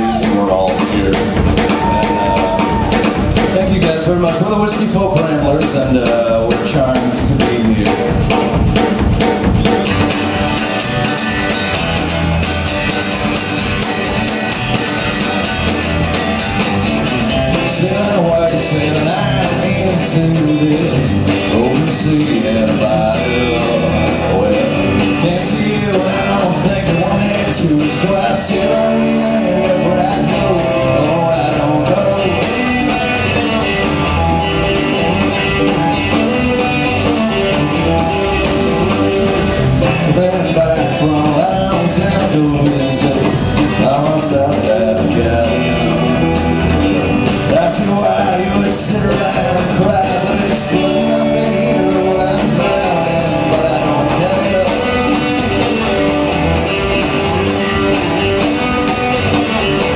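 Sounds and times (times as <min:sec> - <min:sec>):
drum kit beat: 0:00.0 - 0:59.9
electric guitar: 0:00.0 - 0:59.9
strummed acoustic guitar: 0:00.0 - 0:59.9
upright bass: 0:00.0 - 0:59.9.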